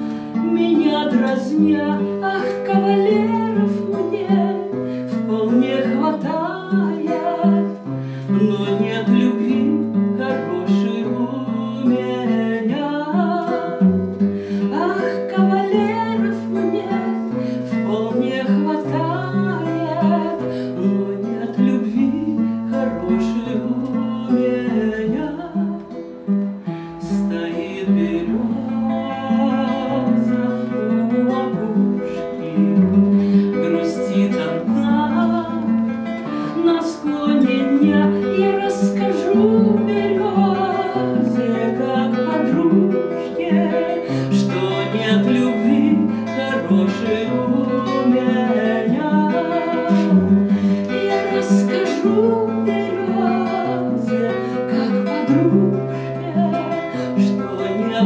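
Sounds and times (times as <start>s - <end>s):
classical guitar: 0.0s - 58.0s
woman singing: 0.0s - 58.0s.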